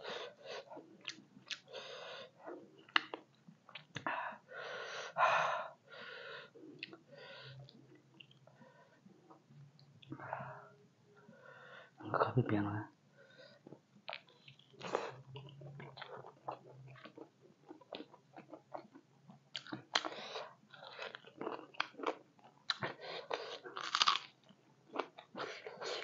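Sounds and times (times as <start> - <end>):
person chewing crunchy food: 13.6 - 26.0.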